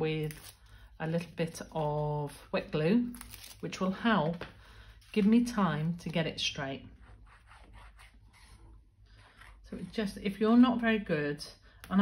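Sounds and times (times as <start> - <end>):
glue applicator rubbing on tape: 7.0 - 8.6.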